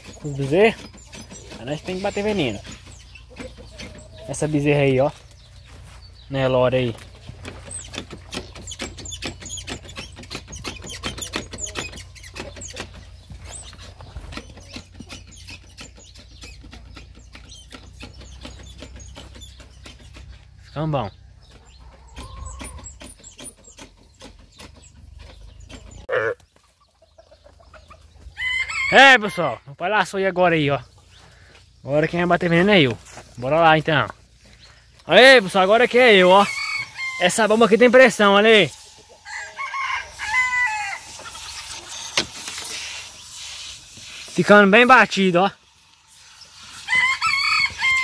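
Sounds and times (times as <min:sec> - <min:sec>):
chickens clucking: 0:00.0 - 0:48.0.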